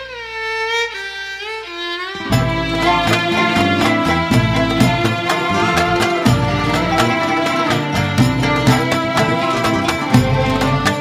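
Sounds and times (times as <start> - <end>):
slow solo violin melody: 0.0 - 11.0
low held drone: 2.2 - 11.0.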